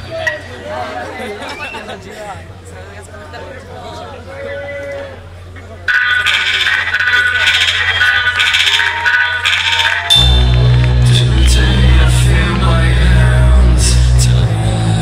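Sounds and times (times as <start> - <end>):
crowd voices: 0.0 - 15.0
heavy bass and drums: 5.9 - 15.0
metal band playing: 5.9 - 15.0.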